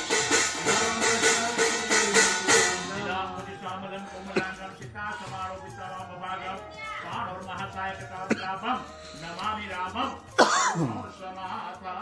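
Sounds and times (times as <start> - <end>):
throat-clearing cough: 4.3 - 4.6, 8.3 - 8.6, 10.4 - 11.1.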